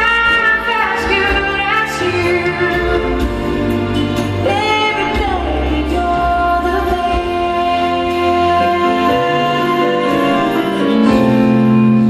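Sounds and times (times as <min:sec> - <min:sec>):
band and orchestra sustained notes: 0:00.0 - 0:12.0.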